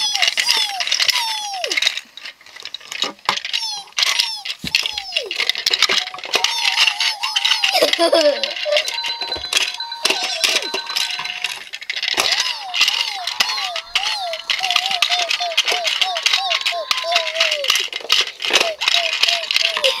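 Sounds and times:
toy cars clicking and rattling: 0.0 - 20.0.

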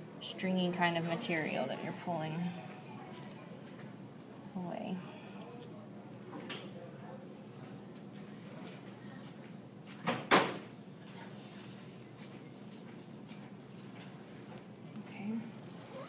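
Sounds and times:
low room noise: 0.0 - 16.0.

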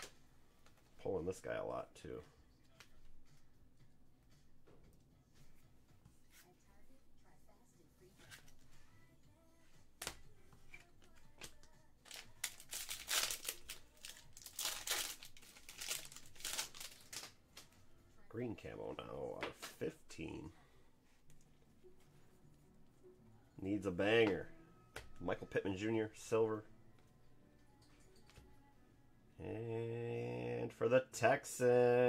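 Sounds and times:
wrapper tearing and crinkling: 12.0 - 17.4.

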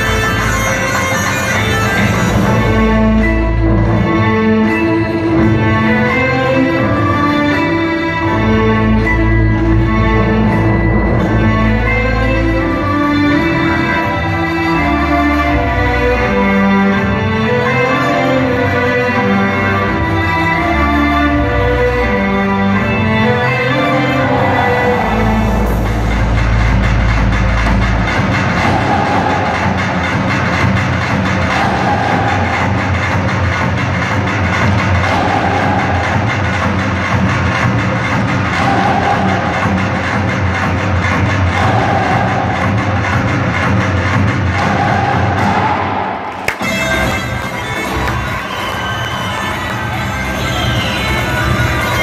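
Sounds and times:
fast folk dance music: 0.0 - 52.0.

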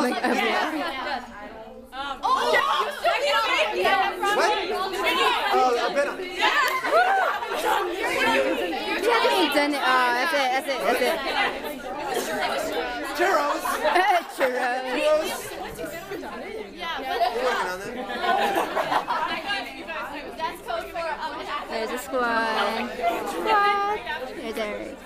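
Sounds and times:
group of people chattering: 0.0 - 25.0.

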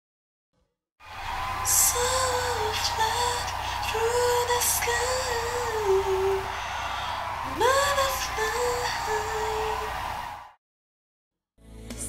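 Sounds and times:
crowd noise: 1.0 - 10.6.

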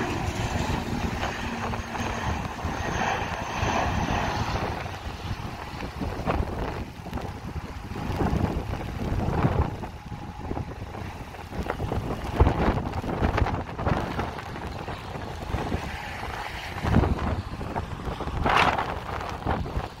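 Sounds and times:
turboprop engines at takeoff power: 0.0 - 20.0
wind buffeting microphone: 0.0 - 20.0.

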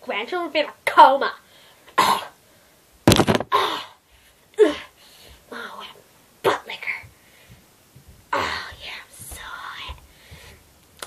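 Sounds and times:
handling noise: 3.1 - 3.5.

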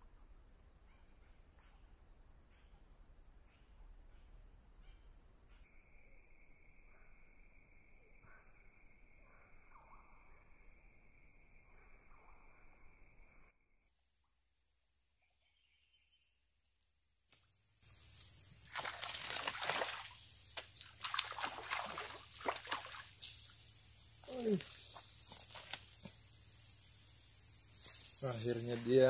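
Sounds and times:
fish thrashing water splashes: 18.6 - 23.2.

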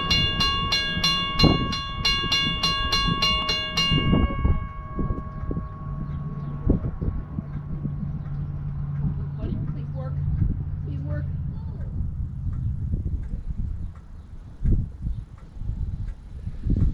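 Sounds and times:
steam locomotive bell ringing: 0.0 - 7.6
low steady hum: 0.0 - 16.9.

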